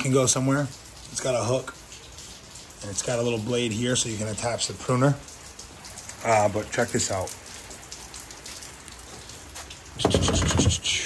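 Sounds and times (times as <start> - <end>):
heavy rain pattering: 0.0 - 11.0.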